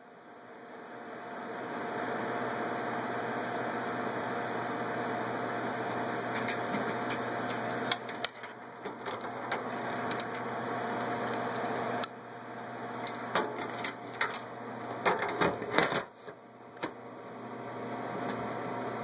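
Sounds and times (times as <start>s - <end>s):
computer fans whirring: 0.0s - 19.0s.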